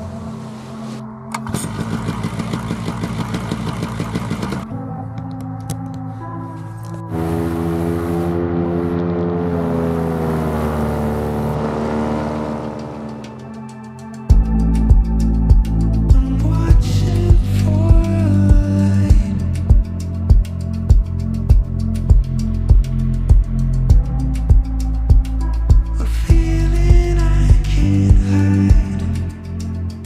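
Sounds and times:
background music: 0:00.0 - 0:30.0
paramotor engine running: 0:01.3 - 0:04.7, 0:07.1 - 0:13.8.

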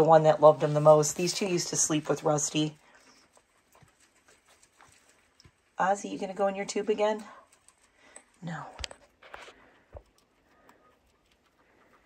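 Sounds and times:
guinea pigs rustling on hay: 0:00.0 - 0:12.0.

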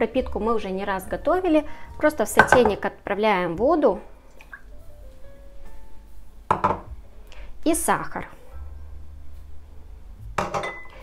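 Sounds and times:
kitchenware clinking: 0:02.3 - 0:02.8, 0:06.5 - 0:06.9, 0:10.4 - 0:11.0.

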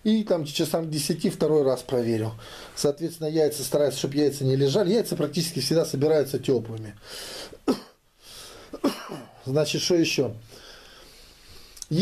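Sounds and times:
breathing: 0:02.4 - 0:02.8, 0:07.0 - 0:07.6, 0:08.2 - 0:08.8, 0:10.4 - 0:11.8
man clearing his throat: 0:07.6 - 0:08.0, 0:08.8 - 0:09.4.

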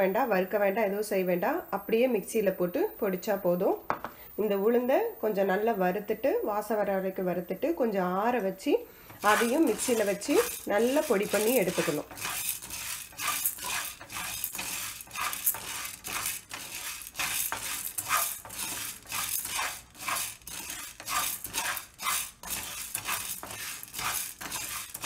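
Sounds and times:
wooden spatula scraping frying pan: 0:09.0 - 0:25.0
lentils rattling in pan: 0:09.1 - 0:25.0.

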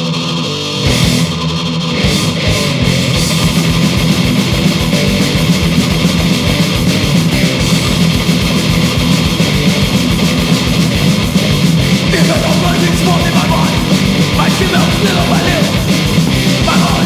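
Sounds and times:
bass guitar: 0:00.0 - 0:17.0
distorted electric guitars: 0:00.0 - 0:17.0
fast drum beat: 0:02.0 - 0:17.0.

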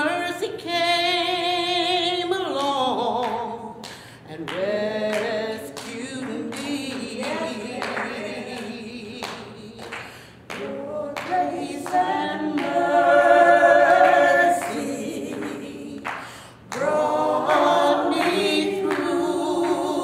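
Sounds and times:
two women singing unaccompanied: 0:00.0 - 0:20.0.

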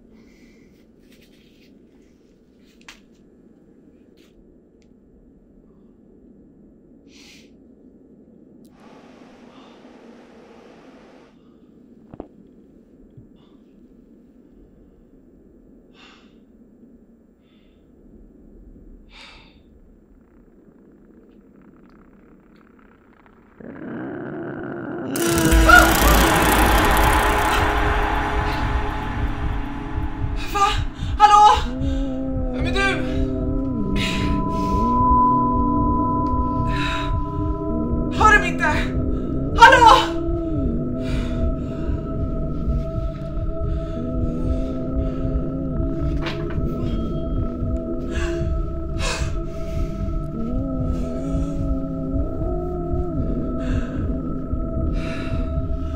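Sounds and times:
low drone: 0:08.7 - 0:11.9, 0:25.1 - 0:55.9
dissonant jump-scare sting: 0:25.2 - 0:32.4.

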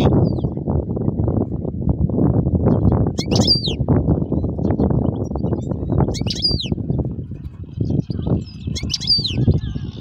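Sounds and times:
bird chirping: 0:02.6 - 0:10.0.

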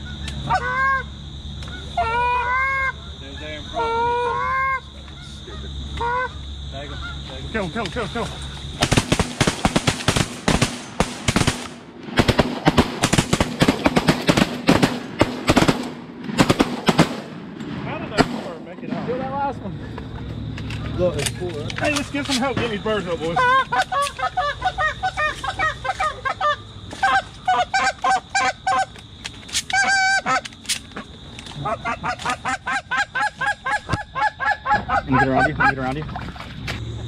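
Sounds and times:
goose honks: 0:00.5 - 0:01.1, 0:01.7 - 0:07.3, 0:23.3 - 0:28.9, 0:29.7 - 0:30.4, 0:31.6 - 0:36.0
shotgun blasts: 0:08.8 - 0:19.2.

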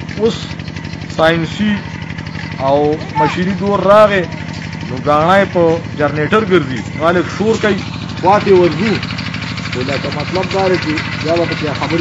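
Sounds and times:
engine idling: 0:00.0 - 0:12.0
man talking: 0:00.1 - 0:02.0, 0:02.6 - 0:09.1, 0:09.7 - 0:12.0.

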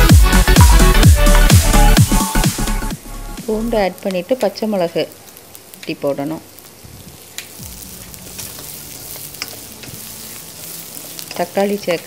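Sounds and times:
vegetables sizzling in hot oil: 0:03.4 - 0:12.0.

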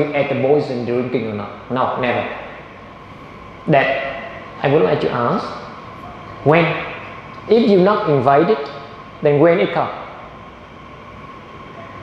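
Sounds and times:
faint high whine: 0:00.0 - 0:12.0
hall background noise: 0:00.0 - 0:12.0.

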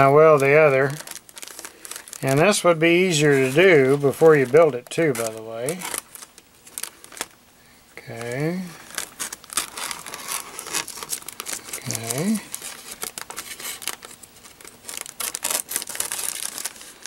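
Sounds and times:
plastic sheet crinkling: 0:00.0 - 0:07.4, 0:08.0 - 0:17.0
scissors cutting plastic film: 0:03.1 - 0:07.3, 0:08.1 - 0:17.0.

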